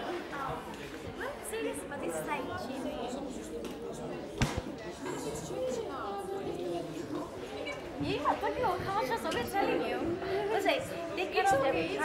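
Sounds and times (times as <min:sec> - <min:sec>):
students chattering: 0:00.0 - 0:12.0.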